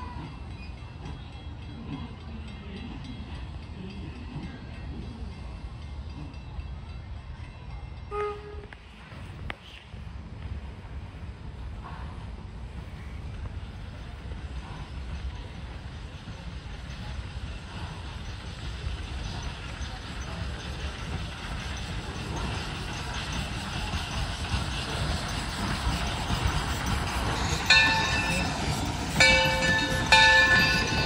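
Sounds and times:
steam locomotive running: 0:00.0 - 0:31.0.

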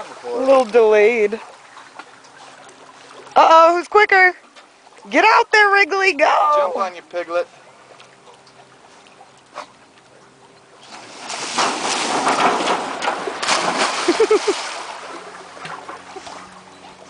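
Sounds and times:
dog splashing in water: 0:10.9 - 0:16.4.

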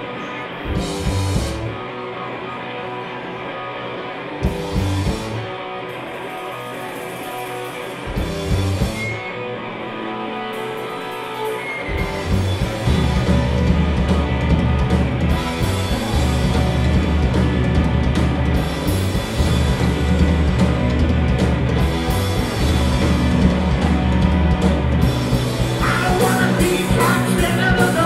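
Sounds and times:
bass guitar: 0:00.0 - 0:28.0
electric guitars: 0:00.0 - 0:28.0
live rock band: 0:00.0 - 0:28.0
drums beating: 0:00.7 - 0:01.8, 0:04.4 - 0:09.2, 0:10.7 - 0:28.0.

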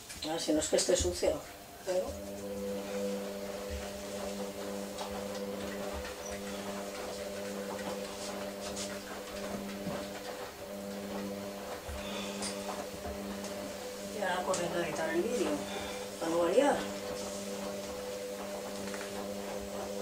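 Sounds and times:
hum of held tones: 0:01.9 - 0:20.0
cloth rubbing on tiles: 0:02.0 - 0:20.0.

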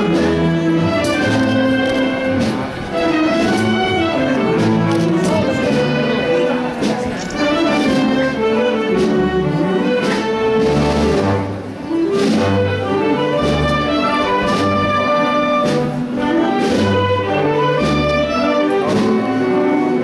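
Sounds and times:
percussion hits: 0:00.0 - 0:19.5
wind band playing march: 0:00.0 - 0:20.0.

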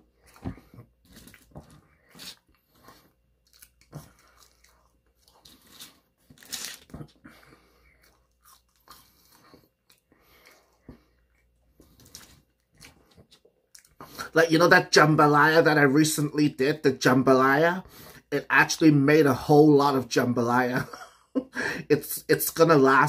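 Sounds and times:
person chewing fries: 0:00.0 - 0:14.3
crackle of food: 0:00.2 - 0:10.6, 0:11.3 - 0:14.0.

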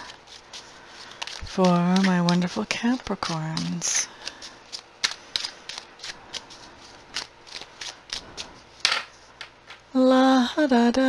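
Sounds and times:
cards being shuffled: 0:00.0 - 0:09.8.

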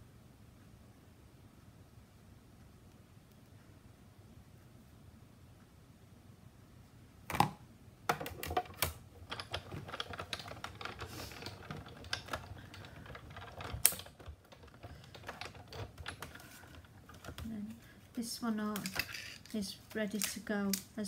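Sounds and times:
plastic plates clicking and tapping: 0:07.3 - 0:17.5.

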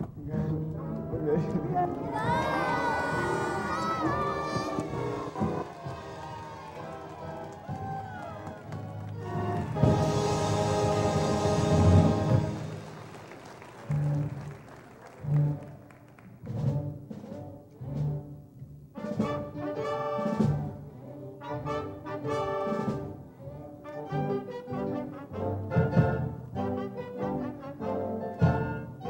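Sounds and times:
soft orchestral music: 0:00.0 - 0:29.0
young voices cheering and shouting: 0:01.9 - 0:08.7
high voice long scream: 0:02.0 - 0:05.6.

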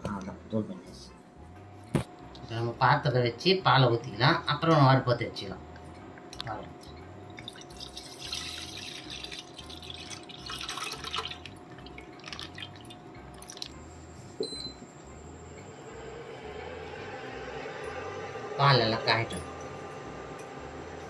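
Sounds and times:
faint hum: 0:00.0 - 0:21.0
milk pouring into steel pot: 0:07.4 - 0:13.8
cooktop electronic beep: 0:11.8 - 0:15.6.

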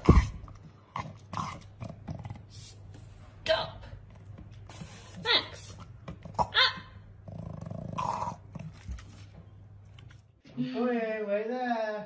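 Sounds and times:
dog grumbling: 0:07.2 - 0:08.7.

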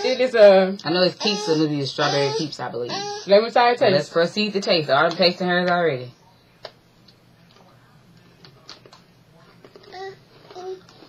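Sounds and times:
crunching cookie chewing: 0:08.4 - 0:11.0.

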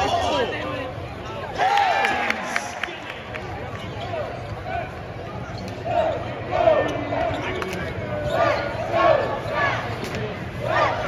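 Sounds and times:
crowd murmur: 0:00.0 - 0:11.0
sneaker squeaks: 0:03.7 - 0:10.4.

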